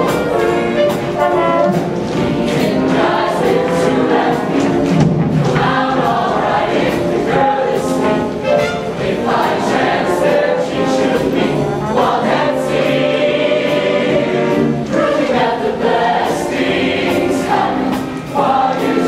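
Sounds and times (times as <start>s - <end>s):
choir singing in harmony: 0.0s - 19.0s
live band: 0.0s - 19.0s
percussion hits: 0.0s - 19.0s.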